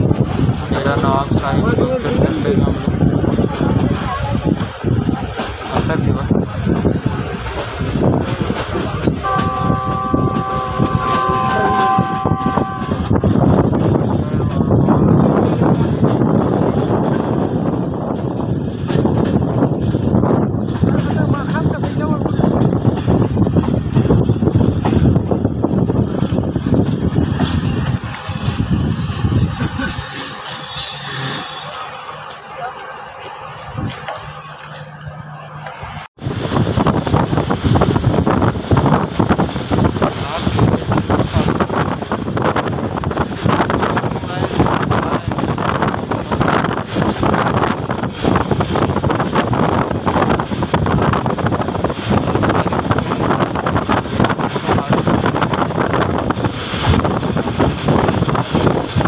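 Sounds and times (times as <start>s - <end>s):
wind buffeting microphone: 0.0s - 32.3s, 33.1s - 59.0s
train coaches rumbling and clacking: 0.0s - 59.0s
locomotive air horn chord: 9.2s - 13.8s.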